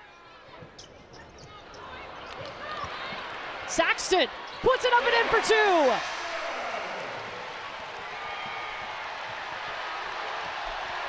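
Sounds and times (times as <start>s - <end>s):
crowd cheering and chatter: 0.0s - 11.0s.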